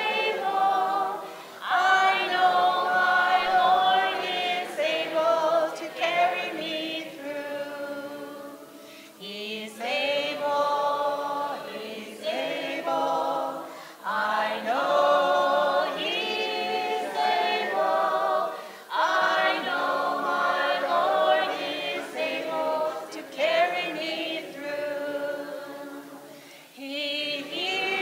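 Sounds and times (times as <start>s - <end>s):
women singing gospel unaccompanied: 0.0s - 28.0s.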